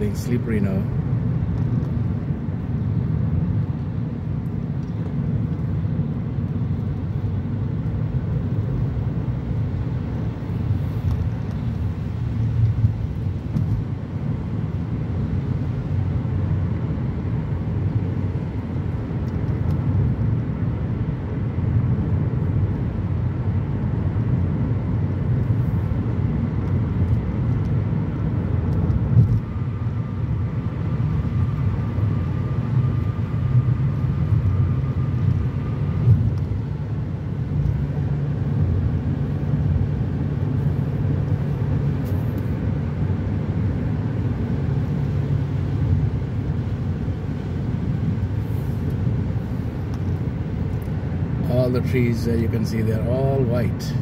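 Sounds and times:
car tyre and road noise: 0.0 - 54.0.

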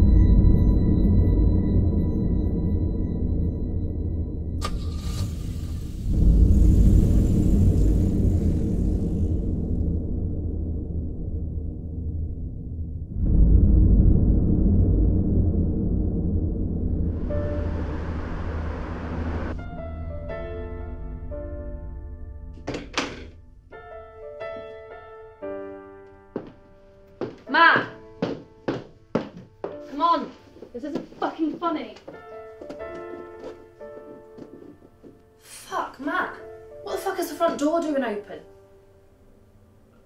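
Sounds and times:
car driving past: 16.6 - 19.6.

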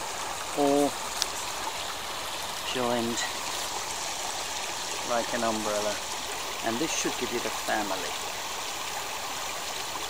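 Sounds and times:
stream running over stones: 0.0 - 10.0.

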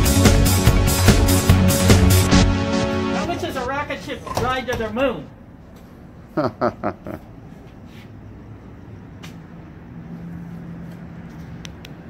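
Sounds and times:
electronic music with drum beat: 0.0 - 4.2.

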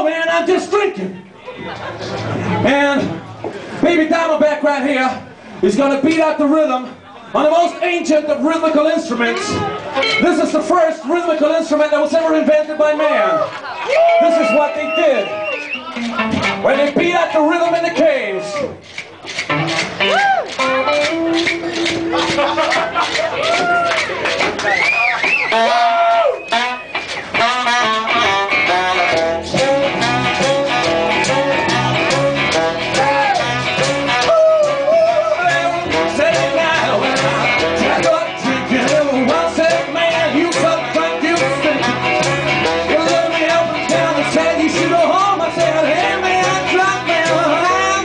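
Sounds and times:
live band playing blues rock: 14.0 - 17.1, 18.8 - 48.0
bending melodic lead line: 26.5 - 48.0.

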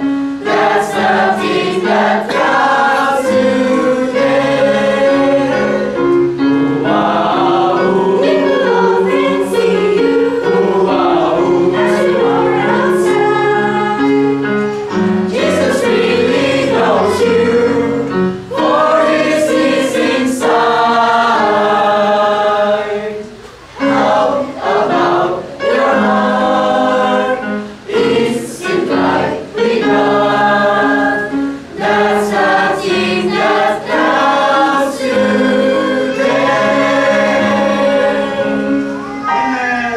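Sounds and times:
choir singing a hymn: 0.0 - 39.9.

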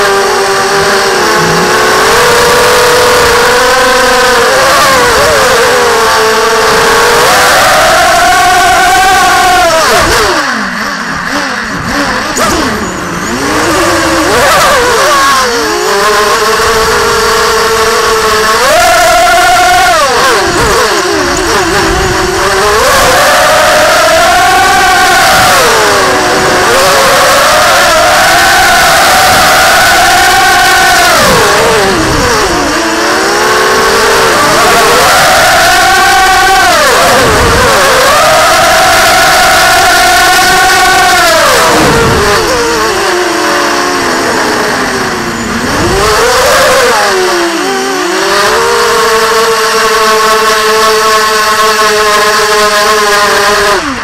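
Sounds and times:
quadcopter motors whining: 0.0 - 54.0.

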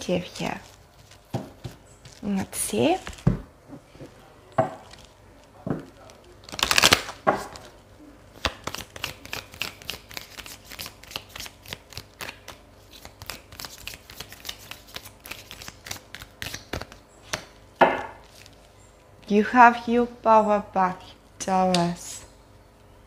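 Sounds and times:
cards being shuffled: 5.9 - 7.8, 8.4 - 17.6.

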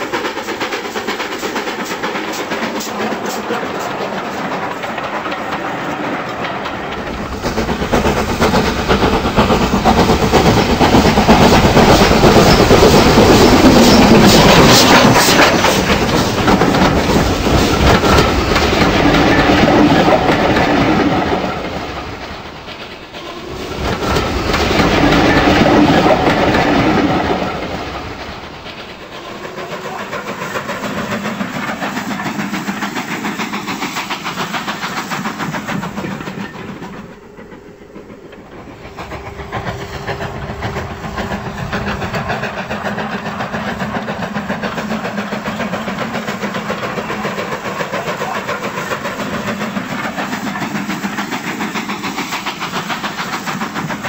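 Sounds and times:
model train wheels clattering on rails: 0.0 - 23.1, 23.8 - 54.0
steady train hum: 0.0 - 54.0.

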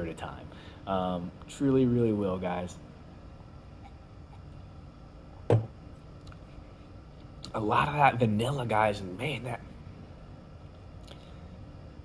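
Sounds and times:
glass set down on table: 5.5 - 5.8.

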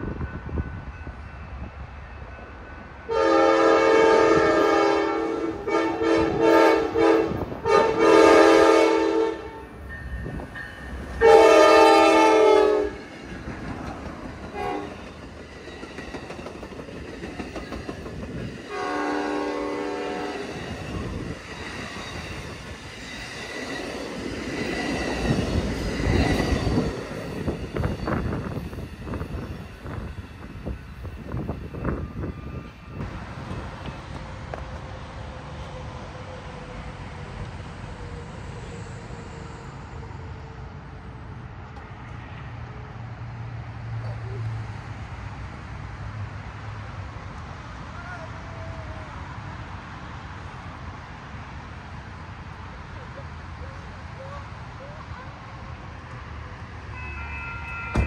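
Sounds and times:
train horn blasts: 3.1 - 9.8, 11.2 - 13.1, 14.5 - 15.0, 18.7 - 20.7, 56.9 - 58.0.

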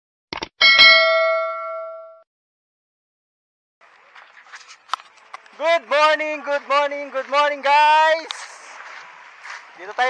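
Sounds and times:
bright bell ding: 0.6 - 2.2.

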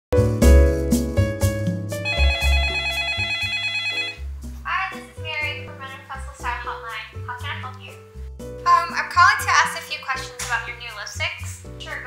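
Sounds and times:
electronic telephone ringing: 2.0 - 4.3.

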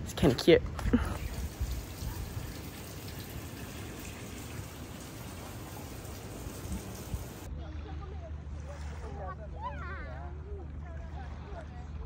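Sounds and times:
fountain water trickling: 1.2 - 7.5.

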